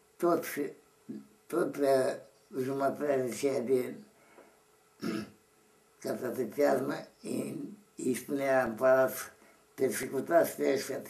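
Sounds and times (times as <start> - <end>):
man clearing his throat: 5.0 - 5.4.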